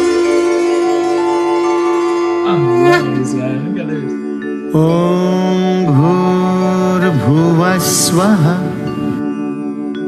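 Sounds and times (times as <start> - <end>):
person chanting devotional song: 0.0 - 9.3.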